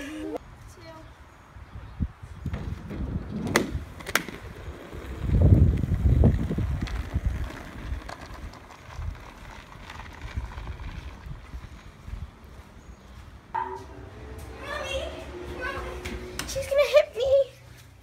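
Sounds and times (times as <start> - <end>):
scooter wheels rolling: 2.4 - 17.5
scooter clacks: 3.5 - 12.0.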